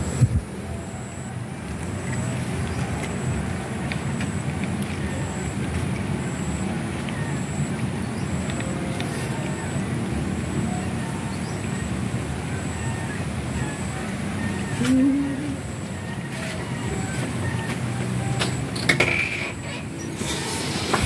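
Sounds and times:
low rumbling background noise: 0:00.0 - 0:21.0.

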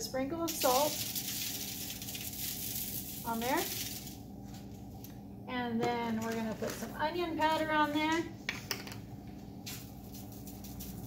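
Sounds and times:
salt sprinkling rattling hiss: 0:00.5 - 0:04.3, 0:09.6 - 0:11.0.

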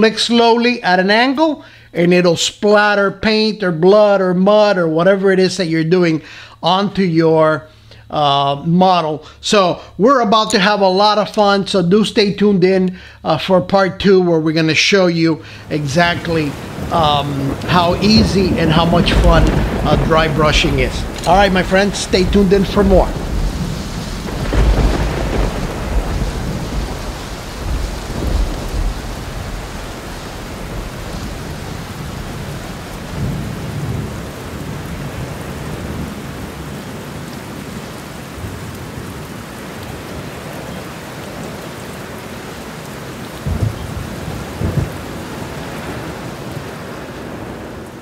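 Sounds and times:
steady hissing rain: 0:00.0 - 0:48.0
thunder rolling: 0:15.6 - 0:40.7, 0:43.4 - 0:48.0.

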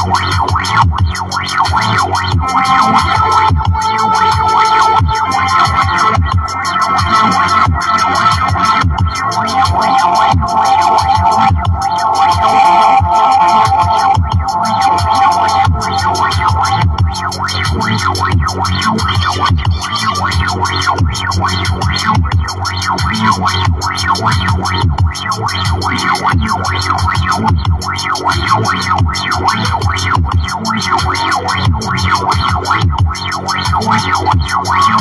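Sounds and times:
distorted guitar music: 0:00.0 - 0:35.0.

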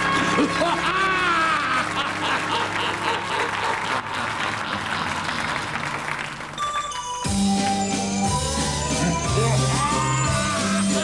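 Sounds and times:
audience applauding: 0:00.0 - 0:07.8.

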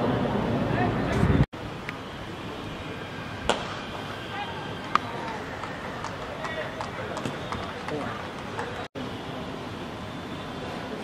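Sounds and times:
steady ground noise: 0:00.0 - 0:11.0.

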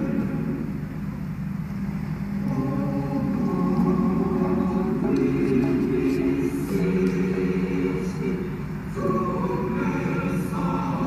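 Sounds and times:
anthem with choir-like voices: 0:00.0 - 0:01.1, 0:02.3 - 0:11.0.

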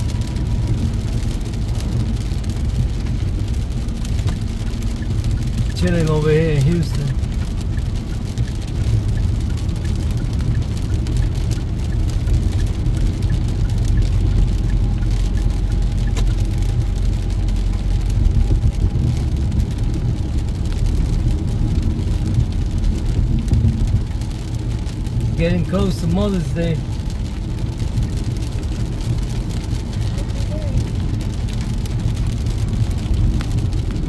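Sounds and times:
car road and tyre noise: 0:00.0 - 0:34.0
rain hitting windshield: 0:00.0 - 0:34.0.

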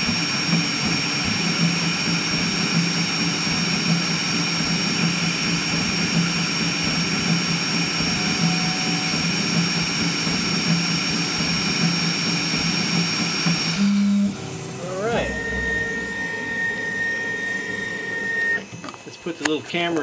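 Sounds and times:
high-pitched whine: 0:00.0 - 0:20.0
three-d printer motors whirring: 0:01.3 - 0:16.9, 0:17.8 - 0:20.0.

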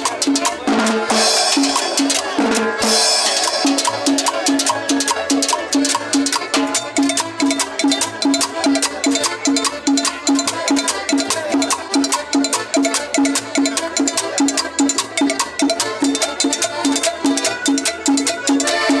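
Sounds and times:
accordion: 0:00.0 - 0:19.0
guitar: 0:00.0 - 0:19.0
percussion beat: 0:00.0 - 0:19.0
upright bass: 0:00.0 - 0:19.0.

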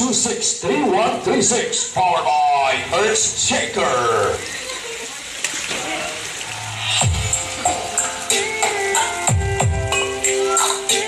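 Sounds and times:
electronic music with kick drum: 0:06.9 - 0:11.0.

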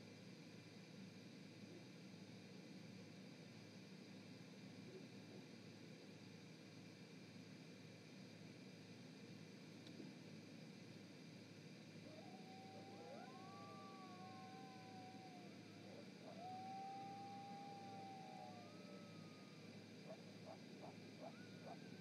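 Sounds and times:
dogs howling: 0:12.0 - 0:22.0.

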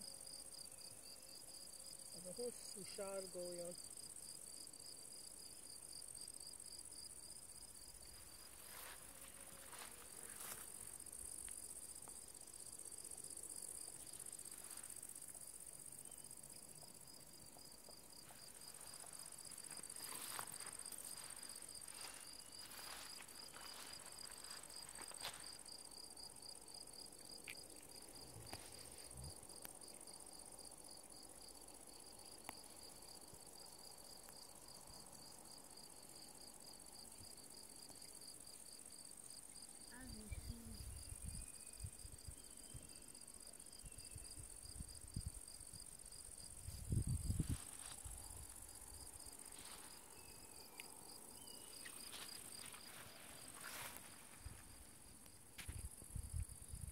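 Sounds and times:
insects chirping: 0:00.0 - 0:56.9.

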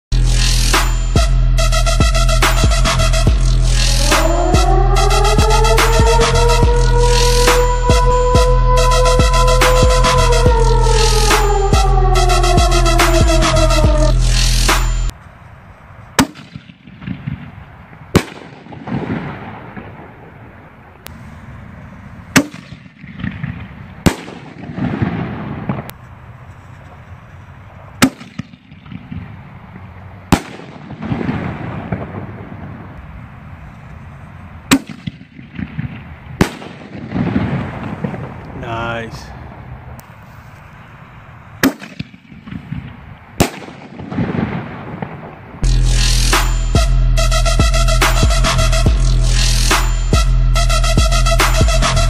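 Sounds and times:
background music: 0:00.1 - 0:15.1, 0:45.6 - 0:52.0
rumbling echo and crackle: 0:16.4 - 0:21.9, 0:22.5 - 0:26.0, 0:26.6 - 0:38.6, 0:41.8 - 0:45.9
firework shells banging: 0:41.6 - 0:45.4.

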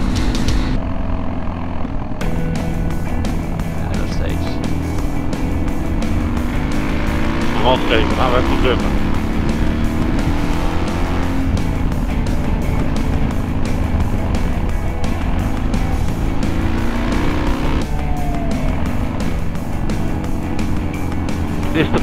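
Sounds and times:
motorcycle engine under throttle: 0:00.0 - 0:22.0
background music with steady beat: 0:02.2 - 0:22.0.

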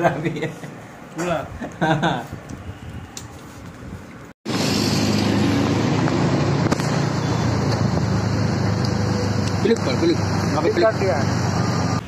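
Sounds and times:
road noise: 0:00.0 - 0:12.0
vehicle engine hum: 0:04.2 - 0:12.0.

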